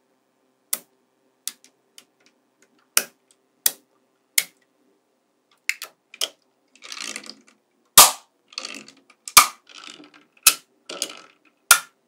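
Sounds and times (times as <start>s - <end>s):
magnetic balls clicking: 5.5s - 12.0s.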